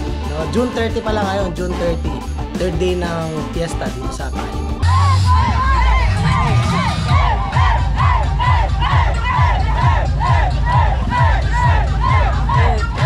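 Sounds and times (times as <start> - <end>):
music with bass beat: 0.0 - 13.0
crowd chanting: 4.8 - 13.0.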